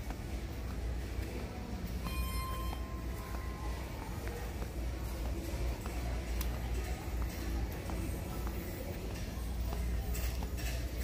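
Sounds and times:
low rumble of store noise: 0:00.0 - 0:11.0
electronic beep tone: 0:02.0 - 0:03.0.

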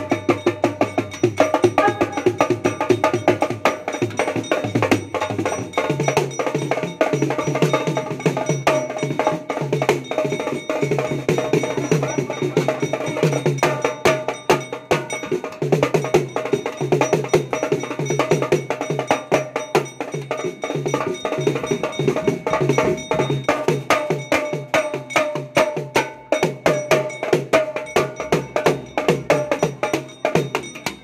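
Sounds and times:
drums played fast with sticks: 0:00.0 - 0:31.0.

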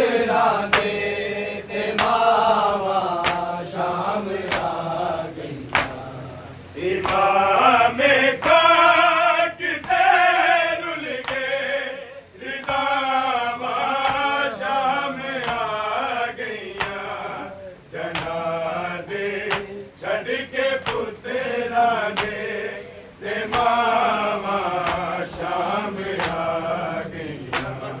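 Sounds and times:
men chanting in unison: 0:00.0 - 0:28.0.

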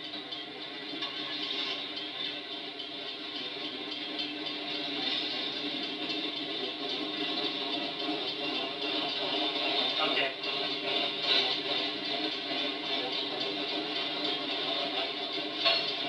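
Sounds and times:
train moving slowly: 0:00.0 - 0:16.0.

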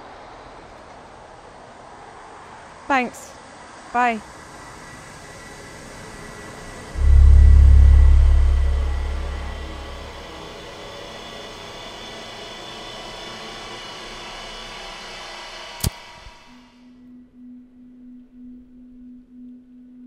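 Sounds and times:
eerie drone: 0:06.9 - 0:10.6
deep bass boom: 0:07.0 - 0:10.2.

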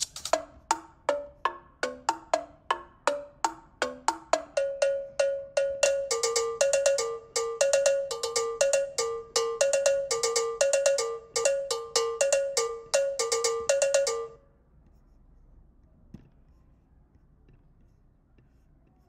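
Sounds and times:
looped electronic percussion: 0:00.0 - 0:14.4.

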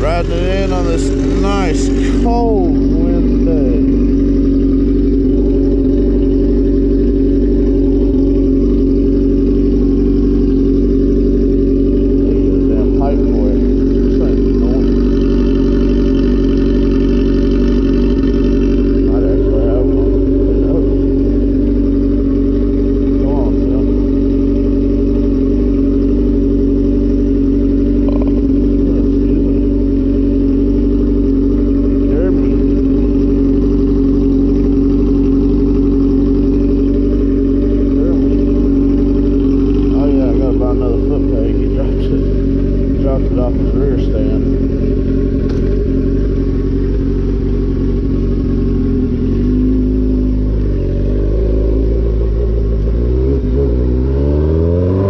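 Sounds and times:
motorcycle engine idling: 0:00.0 - 0:55.0.

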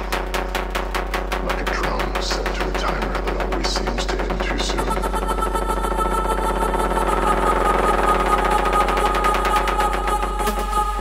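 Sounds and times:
low bass drone: 0:00.0 - 0:11.0
sustained synth chords: 0:00.0 - 0:11.0.

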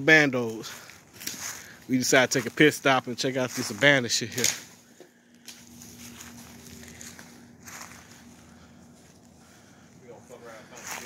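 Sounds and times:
steady low hum: 0:00.0 - 0:11.0
footsteps through dry leaves: 0:00.2 - 0:11.0.

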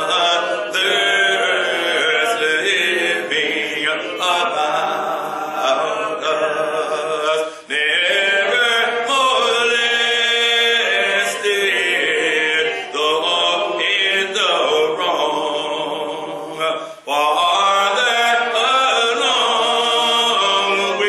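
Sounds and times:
hymn singing: 0:00.0 - 0:21.0
breaths: 0:07.4 - 0:07.7, 0:16.7 - 0:17.1.

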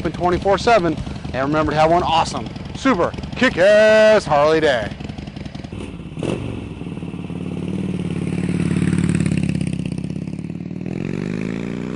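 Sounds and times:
motorcycle engine idling: 0:00.0 - 0:11.9.

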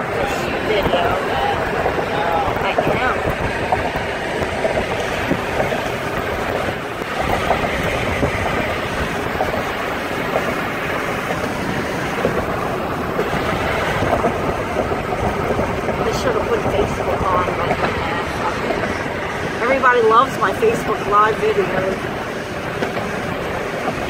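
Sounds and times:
car road noise: 0:00.0 - 0:24.0
wind buffeting microphone: 0:00.0 - 0:24.0.

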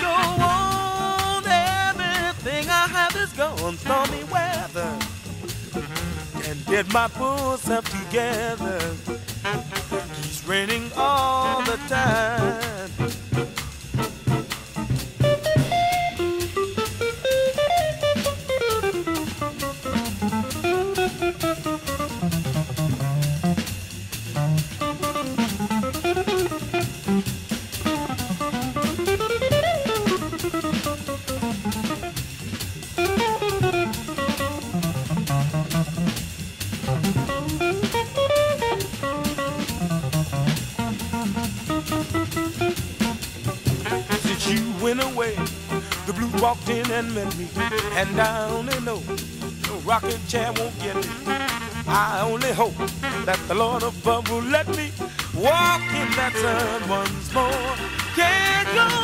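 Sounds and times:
drum kit keeping time: 0:00.0 - 0:59.0
jazz electric guitar solo: 0:00.0 - 0:59.0.

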